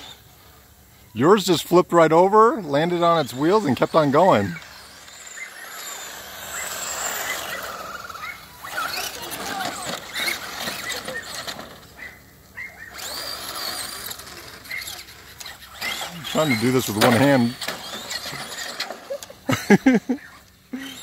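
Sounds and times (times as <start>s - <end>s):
toy truck motors whining: 0.0s - 21.0s.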